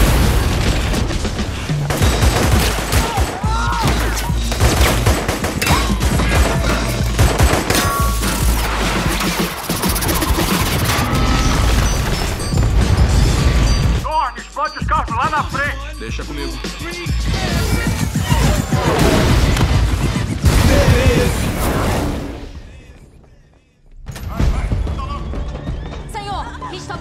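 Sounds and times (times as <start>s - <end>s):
loud explosion: 0.0s - 2.0s, 18.8s - 22.9s
rapid gunfire: 0.0s - 13.8s, 17.4s - 21.9s.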